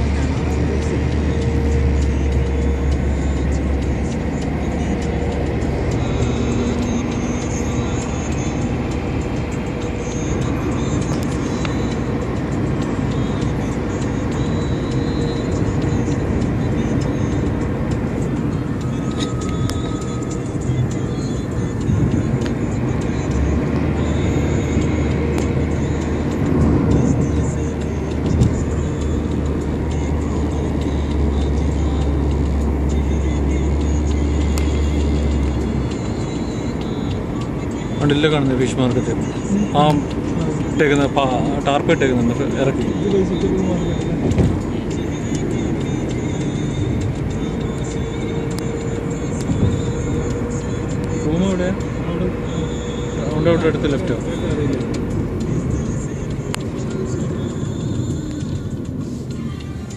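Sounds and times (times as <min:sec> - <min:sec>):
car road and engine noise: 0:00.0 - 0:59.9
music playing: 0:00.0 - 0:59.9.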